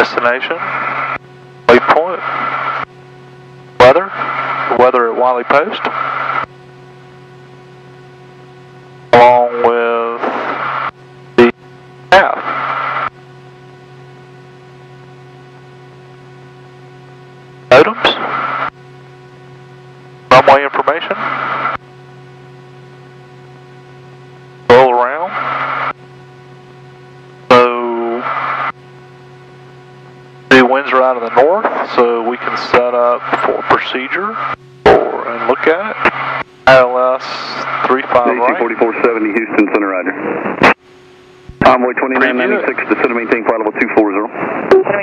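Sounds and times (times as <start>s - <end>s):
aviation radio transmissions: 0.0s - 7.2s, 9.1s - 13.2s, 15.0s - 45.0s
faint steady hum with tones: 0.0s - 45.0s
turboprop cabin noise: 0.0s - 45.0s.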